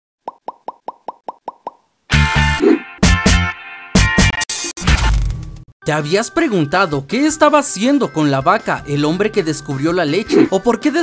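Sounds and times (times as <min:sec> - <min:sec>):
cartoon pop bloops: 0:00.2 - 0:01.8.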